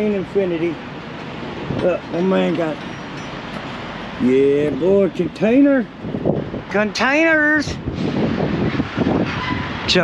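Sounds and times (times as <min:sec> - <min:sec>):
wind buffeting microphone: 0:00.6 - 0:10.0.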